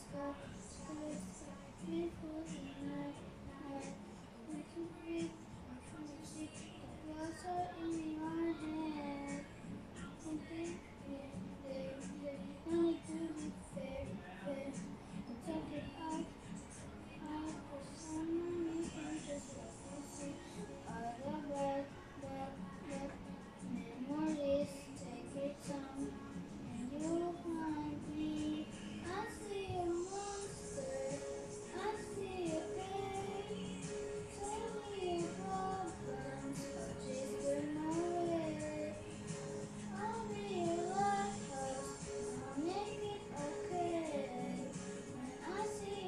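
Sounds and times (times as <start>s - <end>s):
boy singing a slow song: 0.0s - 46.0s
karaoke backing track: 0.0s - 46.0s.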